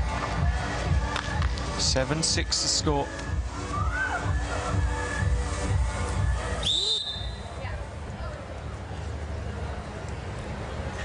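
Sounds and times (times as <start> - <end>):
referee's whistle blast: 6.6 - 7.4.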